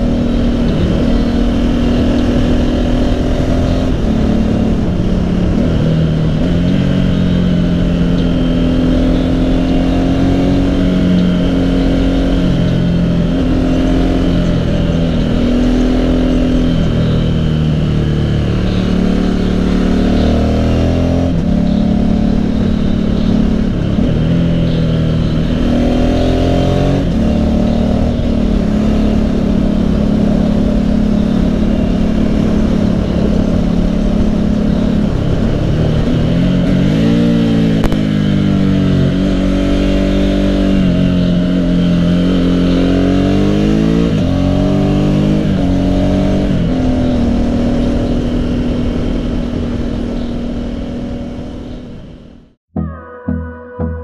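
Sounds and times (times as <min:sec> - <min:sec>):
wind noise: 0:00.0 - 0:52.3
motorcycle engine revving: 0:00.0 - 0:52.6.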